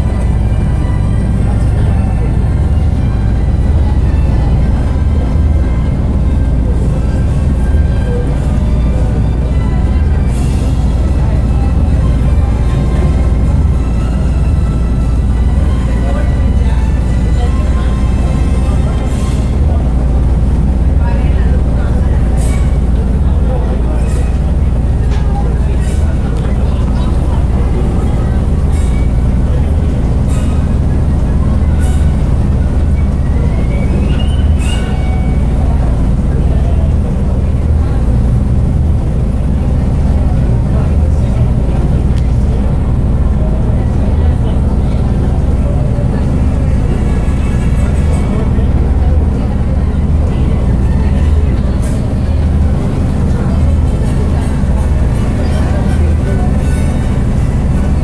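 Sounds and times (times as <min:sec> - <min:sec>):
boat engine rumble: 0:00.0 - 0:58.0
indistinct voices: 0:00.0 - 0:58.0.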